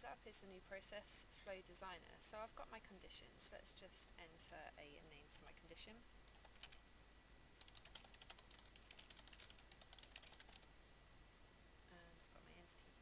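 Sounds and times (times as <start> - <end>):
typing on computer keyboard: 6.3 - 6.8, 7.6 - 10.7.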